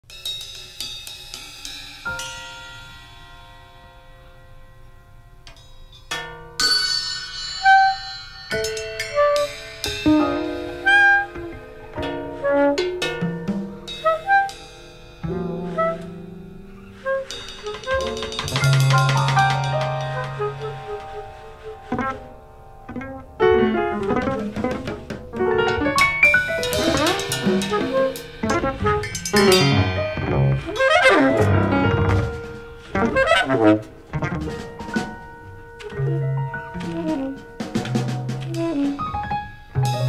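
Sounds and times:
cymbal and drum strokes: 0.0 - 4.4, 5.6 - 35.7
jazz group playing: 8.6 - 40.0.

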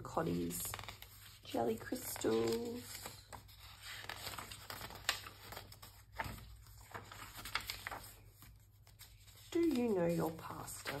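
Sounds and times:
paper pages rustling: 0.0 - 11.0.

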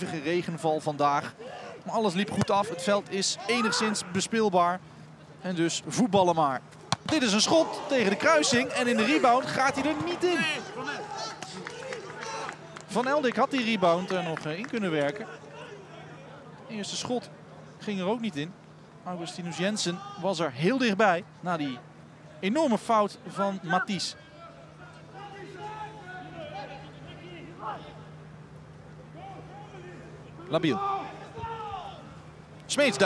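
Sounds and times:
steady low hum: 20.4 - 33.0
faint shouts from players: 29.1 - 32.2.

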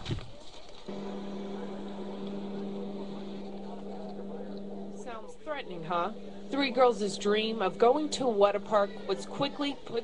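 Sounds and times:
steady low hum: 0.9 - 10.0.

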